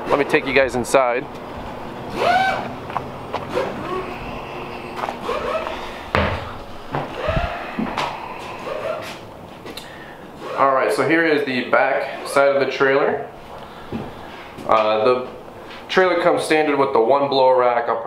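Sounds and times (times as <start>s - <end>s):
short squeaks: 2.1s - 7.8s
heavy low thump: 2.8s - 8.2s.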